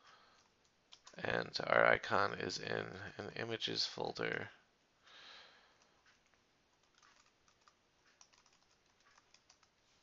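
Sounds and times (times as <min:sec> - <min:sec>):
faint typing on keyboard: 0:00.0 - 0:01.4, 0:05.6 - 0:10.0.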